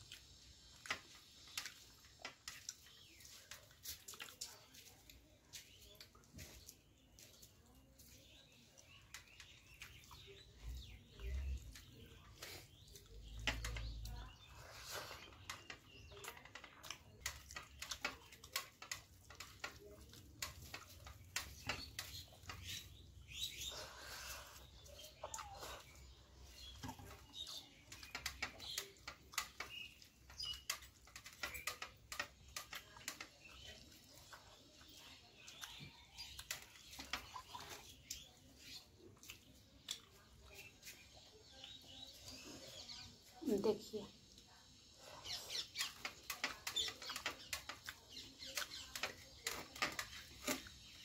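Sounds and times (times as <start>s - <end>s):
chewing: 0.0s - 43.3s, 44.1s - 51.0s
chewing with wet mouth smacks: 33.2s - 42.7s.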